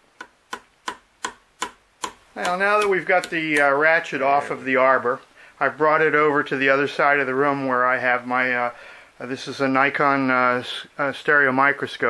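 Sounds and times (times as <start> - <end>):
small hammer tapping steel: 0.2 - 3.7.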